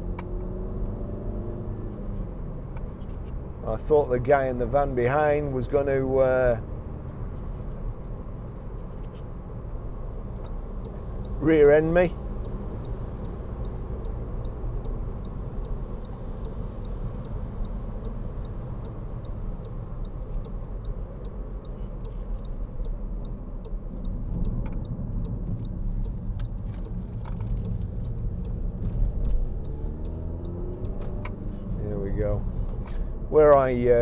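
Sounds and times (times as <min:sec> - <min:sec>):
diesel engine drone: 0:00.0 - 0:34.0.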